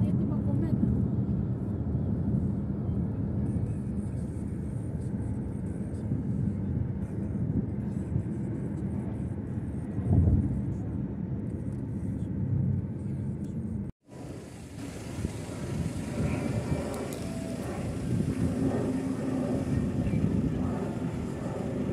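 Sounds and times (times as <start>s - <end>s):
jet airliner rumbling overhead: 0.0s - 21.9s.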